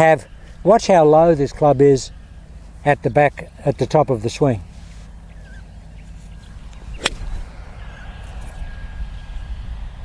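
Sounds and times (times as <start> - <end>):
low steady rumble: 0.0 - 10.0
golf club striking ball: 6.7 - 7.5.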